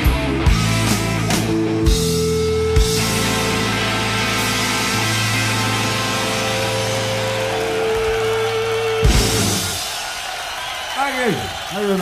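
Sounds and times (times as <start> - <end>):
blues-rock band playing: 0.0 - 10.1.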